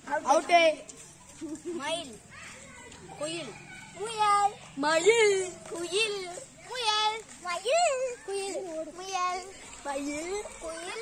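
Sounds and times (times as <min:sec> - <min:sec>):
children calling out: 0:01.1 - 0:11.0.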